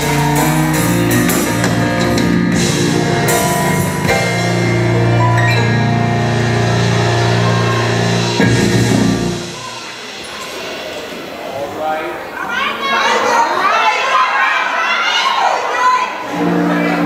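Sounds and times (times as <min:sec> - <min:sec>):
gospel choir and band chord: 0:00.0 - 0:10.2
audience cheering and shouting: 0:00.0 - 0:17.0.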